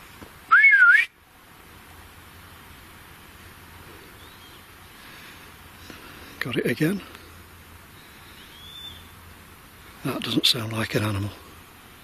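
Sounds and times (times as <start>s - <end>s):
background hiss: 0.0s - 12.0s
man whistling: 0.5s - 1.2s.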